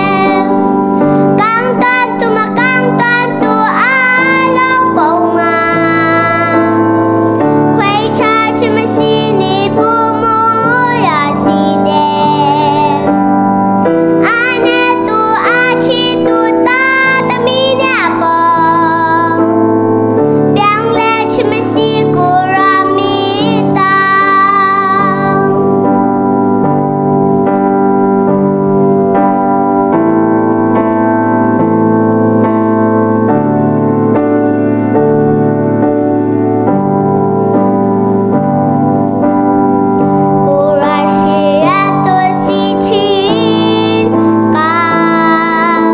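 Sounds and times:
girl singing: 0.0 - 26.2, 39.3 - 45.9
keyboard playing held chords: 0.0 - 45.9.

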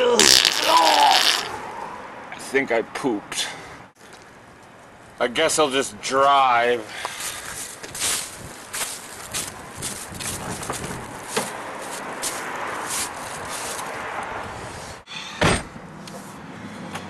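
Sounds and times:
rustle of person getting in: 7.0 - 13.9
footsteps on dry leaves: 7.1 - 14.0.

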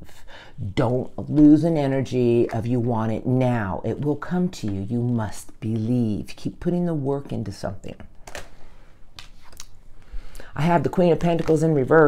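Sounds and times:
cards clicking and rustling: 8.2 - 8.6, 9.2 - 9.7.

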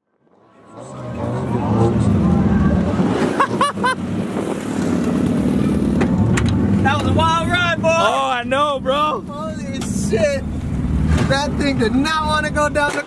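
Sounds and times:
car engine running at low revs: 4.2 - 12.9.

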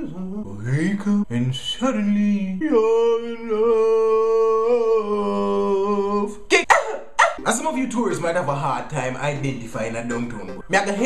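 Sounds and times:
sharp vocal yelps: 6.6 - 7.5.

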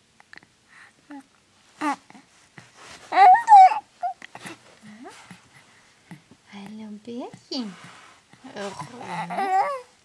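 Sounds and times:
baby cooing and grunting: 1.1 - 2.2, 3.1 - 4.6, 8.5 - 9.9.

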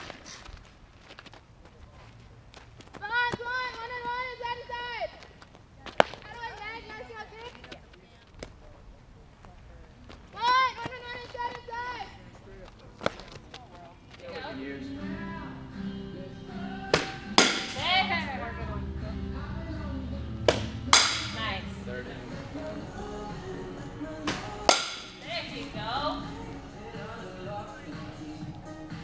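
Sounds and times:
background music with singing: 14.4 - 29.0
softball bat hitting ball: 16.9 - 18.0, 20.5 - 21.5, 24.2 - 25.2.

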